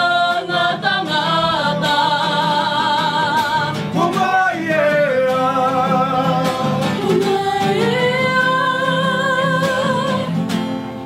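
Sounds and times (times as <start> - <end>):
voices singing with vibrato: 0.0 - 10.7
strummed guitar: 0.0 - 11.0.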